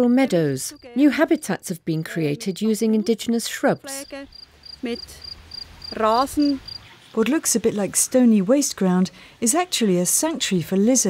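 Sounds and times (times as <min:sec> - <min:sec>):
cricket chirping: 0:03.9 - 0:06.9.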